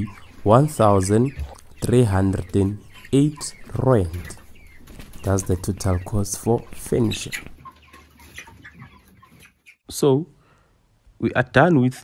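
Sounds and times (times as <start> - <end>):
chickens calling: 0.0 - 10.0.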